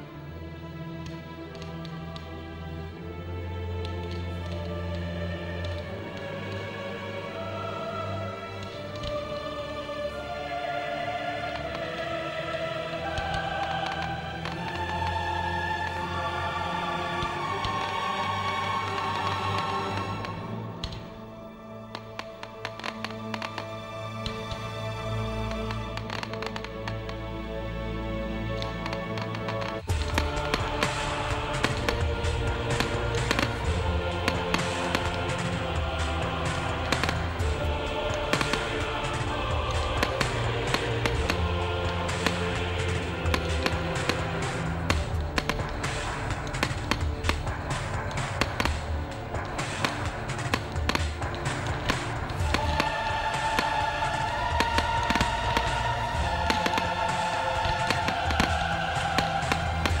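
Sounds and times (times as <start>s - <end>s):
fireworks show music: 0.0s - 60.0s
fireworks banging and crackling: 11.4s - 21.2s, 21.8s - 24.6s, 28.6s - 60.0s.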